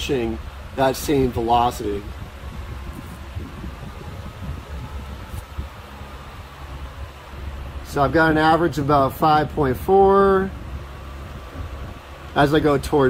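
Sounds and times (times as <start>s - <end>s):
exhaust fan humming: 0.0s - 13.0s.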